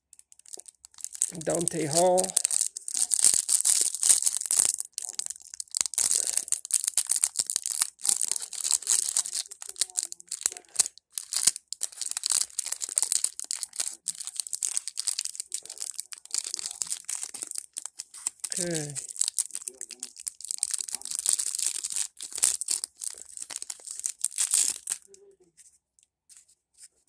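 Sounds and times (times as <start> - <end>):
plastic wrapper crinkling: 0.0 - 25.2.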